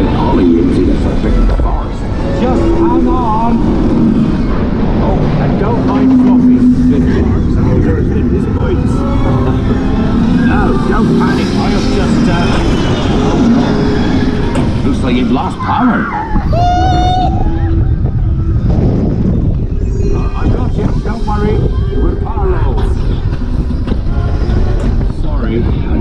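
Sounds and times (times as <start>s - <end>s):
wind rush and track rumble: 0.0s - 26.0s.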